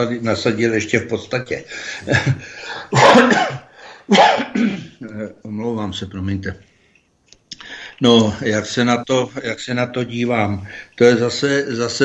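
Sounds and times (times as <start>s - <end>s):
people talking: 0.0s - 2.4s, 5.0s - 6.7s, 7.6s - 12.0s
man coughing: 2.1s - 5.0s.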